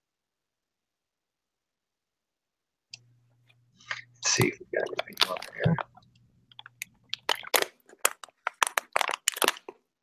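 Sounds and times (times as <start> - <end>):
plastic water bottle crackling: 4.4 - 9.8.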